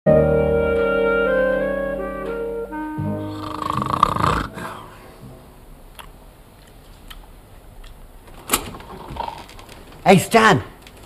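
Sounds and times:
theme tune on wind instruments: 0.1 - 5.5
man snoring loudly: 3.2 - 4.9.

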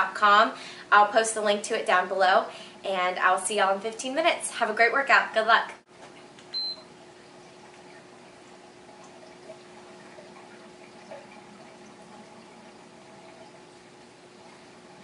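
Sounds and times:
aquarium pump and filter trickling: 5.9 - 15.0.

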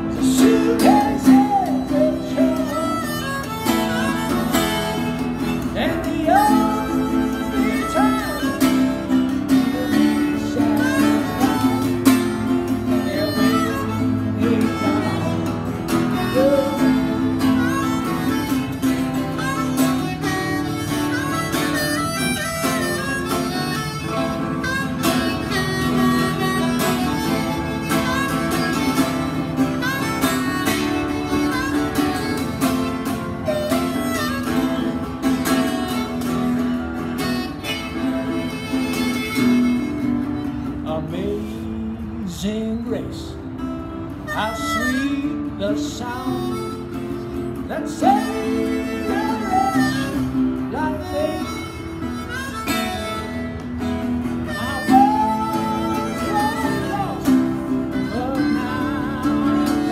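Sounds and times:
harmonica playing: 0.0 - 42.2, 43.4 - 59.9
strummed acoustic guitar: 0.0 - 59.9.

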